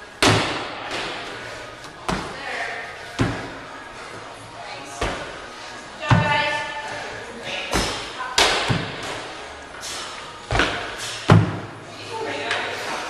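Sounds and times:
feet thudding on wooden box: 3.2 - 3.6, 6.0 - 6.5, 10.5 - 11.7.

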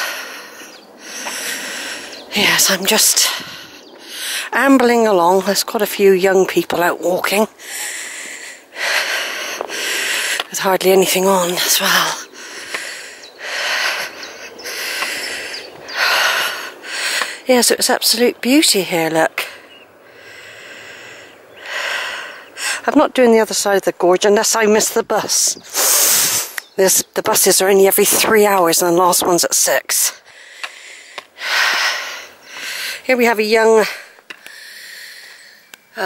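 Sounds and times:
person breathing: 0.0 - 2.3, 3.3 - 4.6, 7.6 - 10.5, 12.2 - 17.5, 19.4 - 22.8, 30.2 - 33.1, 33.8 - 35.7
person breathing into microphone: 0.0 - 2.3, 7.6 - 10.5.

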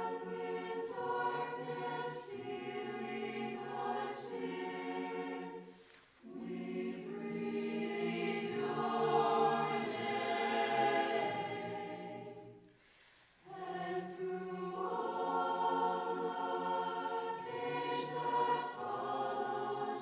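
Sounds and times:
choir singing a cappella: 0.0 - 20.0.

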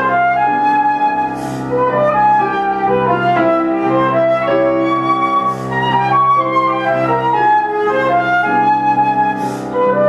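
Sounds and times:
flute melody: 0.0 - 10.0
grand piano: 0.0 - 10.0.

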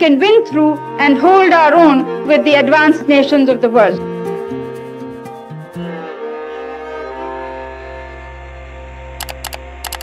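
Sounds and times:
sustained orchestral chord: 0.8 - 10.0
camera shutter-like clicks: 9.2 - 10.0.

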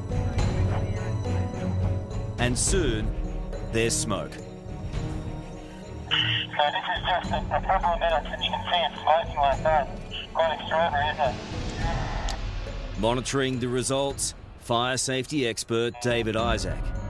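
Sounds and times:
low background music: 0.0 - 17.0
man speaking: 6.1 - 11.4, 13.0 - 16.8.

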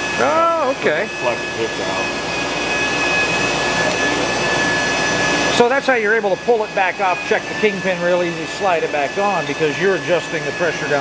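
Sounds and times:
honing machine high whine: 0.0 - 11.0.

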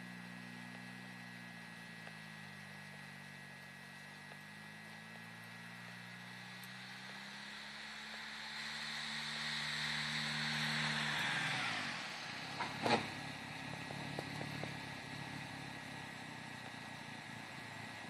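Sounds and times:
car engine running: 0.0 - 18.0
tyres hissing through snow: 2.0 - 18.0.

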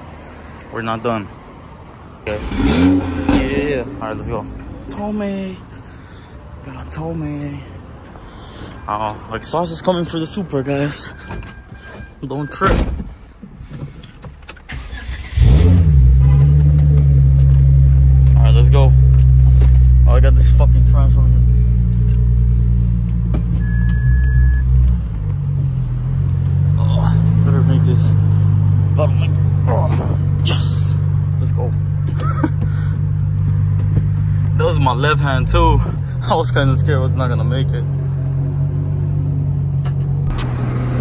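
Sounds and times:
car engine starting and idling: 2.3 - 6.4, 8.0 - 41.0.

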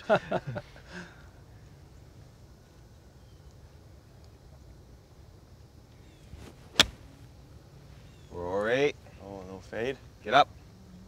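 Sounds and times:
quiet outdoor background: 0.0 - 11.0
golf club striking ball: 6.7 - 7.1.

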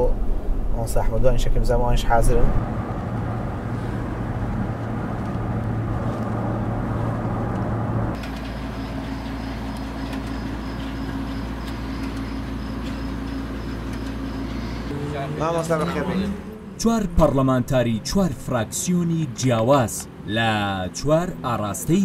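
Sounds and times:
car engine and road noise: 0.0 - 22.0
idling car engine hum: 0.0 - 22.0.

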